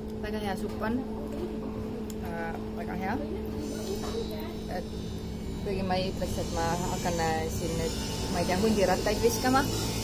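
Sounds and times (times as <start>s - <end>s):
low two-tone hum: 0.0s - 10.0s.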